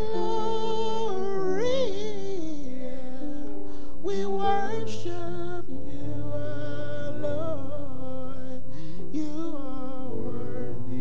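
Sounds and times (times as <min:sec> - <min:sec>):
church keyboard music: 0:00.0 - 0:11.0.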